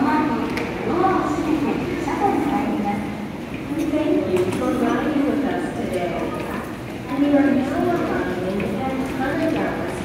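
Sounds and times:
rolling suitcases: 0.0s - 10.0s.

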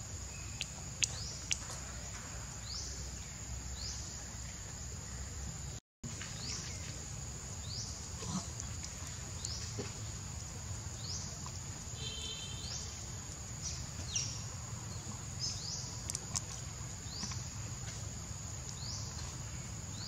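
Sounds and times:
insects droning: 0.0s - 20.0s.

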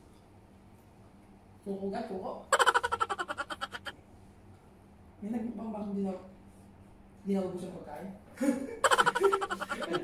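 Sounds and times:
person making rapid pulsed sounds: 2.5s - 3.9s, 8.8s - 10.0s.

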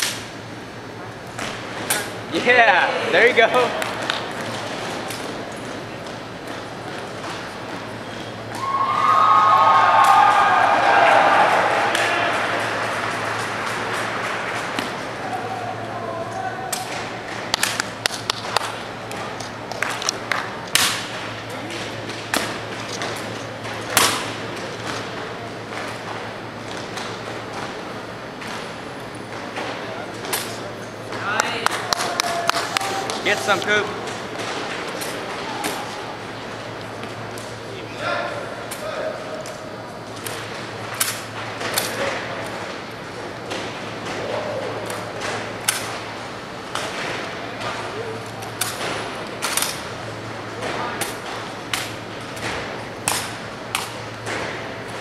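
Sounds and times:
spectators shouting and cheering: 8.5s - 17.2s, 31.2s - 33.9s.

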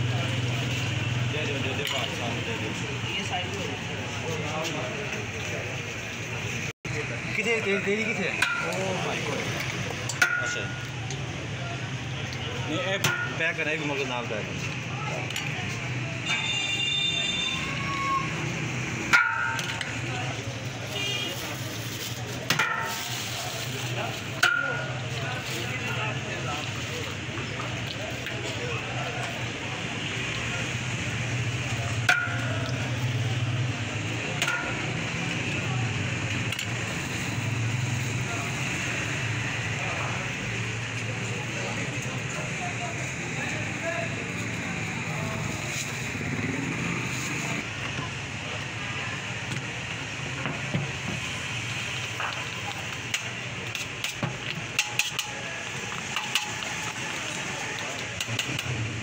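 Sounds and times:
traffic rumble: 0.0s - 59.0s.

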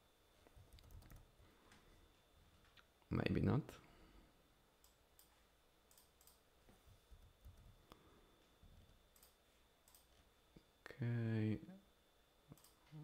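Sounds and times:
computer mouse clicks: 0.7s - 1.2s, 4.8s - 6.4s, 9.1s - 10.1s, 12.5s - 12.8s.

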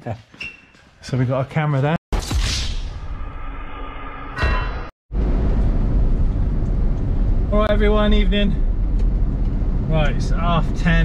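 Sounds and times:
car engine and road rumble: 5.1s - 11.0s.

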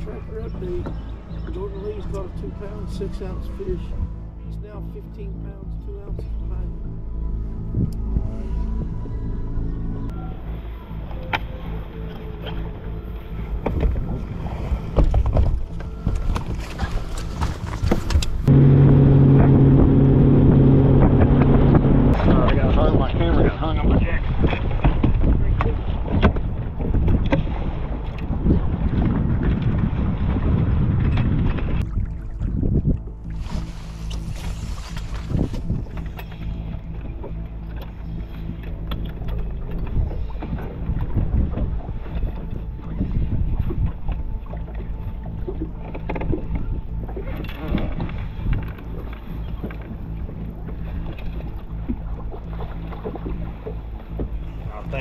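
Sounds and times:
low hum: 0.0s - 55.0s
water rushing around boat: 0.0s - 55.0s.

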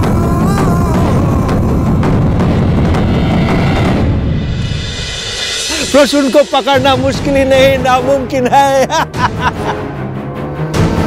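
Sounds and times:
dramatic score with deep drums: 0.0s - 11.0s.

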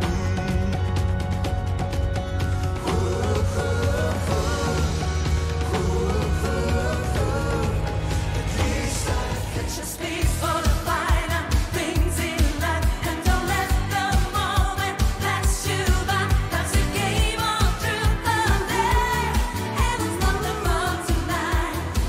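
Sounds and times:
women singing: 2.8s - 22.0s.

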